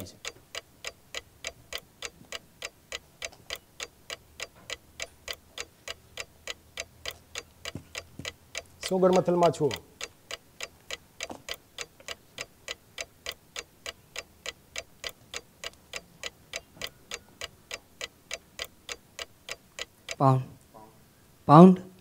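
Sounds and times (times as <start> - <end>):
countdown clock ticking: 0.0 - 20.2.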